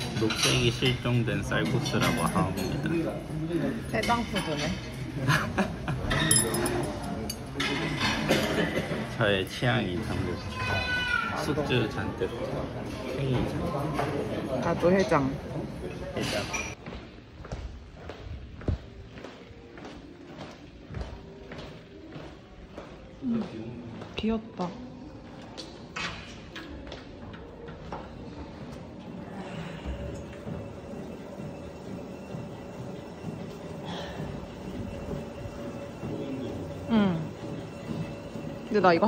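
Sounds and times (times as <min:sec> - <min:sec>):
faint background music: 0:00.0 - 0:39.0
sneaker footsteps on tiled floor: 0:16.8 - 0:26.1
treadmill running rumble: 0:30.4 - 0:39.0.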